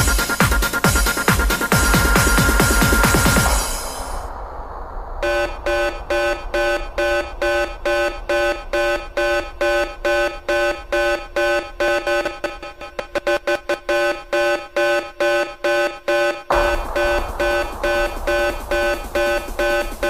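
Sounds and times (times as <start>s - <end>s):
alarm-like beeping synth: 0.0s - 4.3s, 5.2s - 20.0s
electronic dance music: 0.0s - 4.3s, 5.3s - 20.0s.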